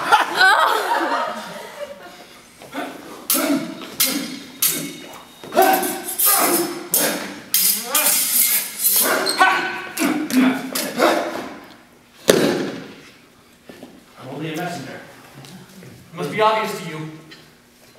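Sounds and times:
shouts and grunts of effort: 2.8 - 7.4
sword blades clashing and ringing: 3.3 - 9.4
loud thump: 12.3 - 12.9.

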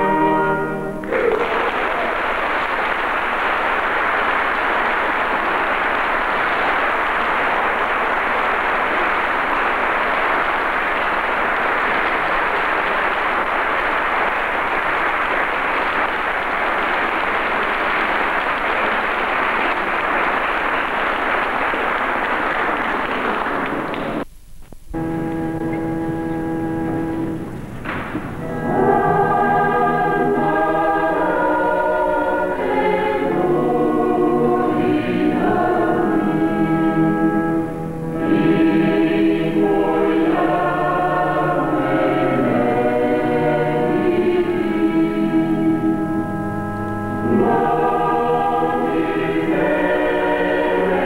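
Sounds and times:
audience applauding: 1.0 - 24.3
sustained musical chords: 25.0 - 51.0.

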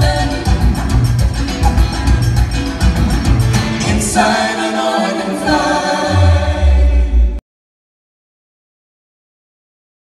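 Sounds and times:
group singing in harmony: 0.0 - 1.9, 2.8 - 7.4.

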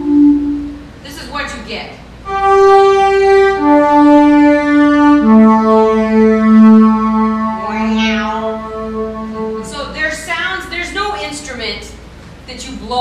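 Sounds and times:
electronic organ sustained notes: 0.0 - 1.0, 2.2 - 10.2.

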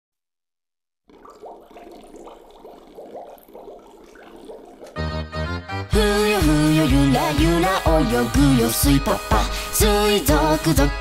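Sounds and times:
bubbling water bloops: 1.0 - 5.4.

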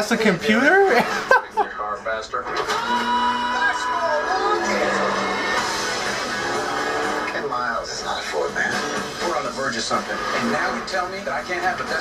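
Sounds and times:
trailer music from television: 0.0 - 12.0.

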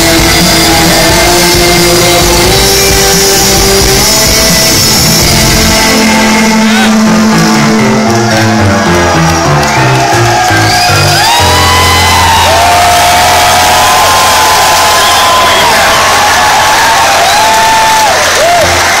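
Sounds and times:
bass guitar line: 0.0 - 19.0
crowd cheering and whistling: 0.0 - 19.0
live rock band: 0.0 - 19.0.

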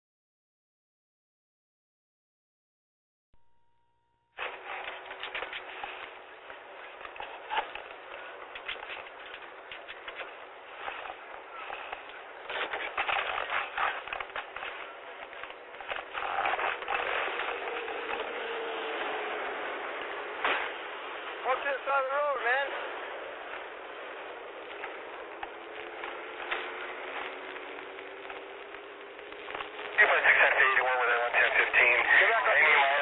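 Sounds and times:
crackling hiss with clicks: 23.5 - 33.0.

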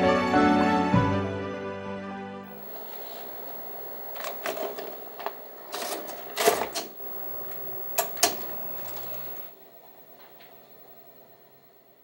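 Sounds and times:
video deck hum: 2.5 - 12.0
tape loading clicks and clunks: 2.6 - 9.5.

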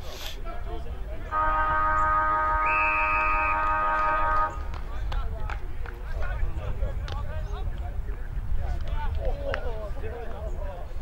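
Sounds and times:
loud steady horn: 1.3 - 4.9
short high whistle blast: 1.9 - 4.6.

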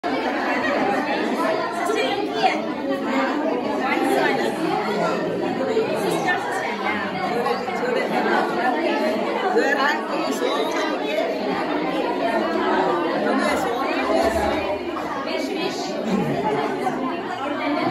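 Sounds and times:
women and girls chattering: 0.0 - 17.9.

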